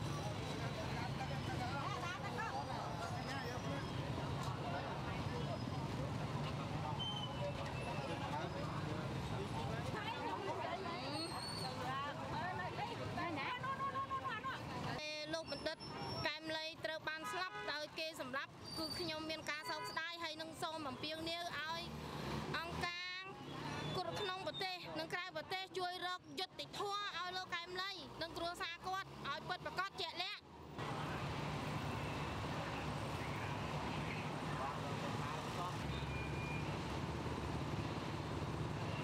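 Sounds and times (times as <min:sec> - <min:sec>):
crowd voices: 0:00.0 - 0:15.0
vehicle engine humming: 0:30.8 - 0:39.0.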